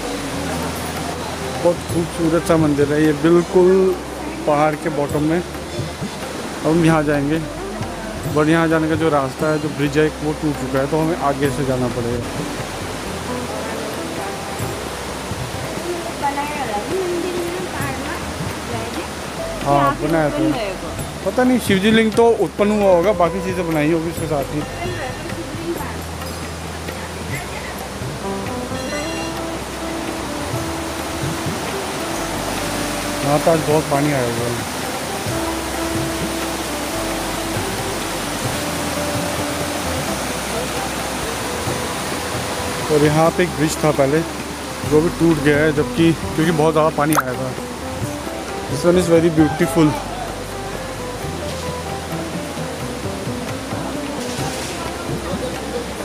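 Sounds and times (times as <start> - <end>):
river water rushing: 0.0 - 56.0
faint voices or melody: 27.1 - 33.3.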